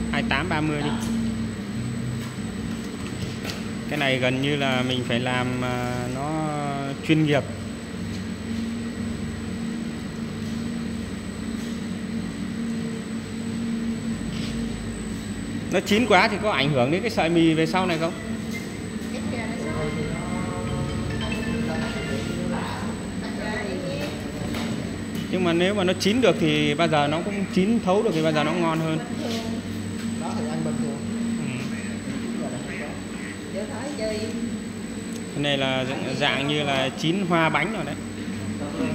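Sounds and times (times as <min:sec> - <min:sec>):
people talking: 0:00.0 - 0:01.2, 0:03.9 - 0:07.6, 0:15.7 - 0:18.2, 0:19.0 - 0:34.5, 0:35.3 - 0:38.0, 0:38.6 - 0:38.9
machine motor humming and rumbling: 0:00.0 - 0:38.9.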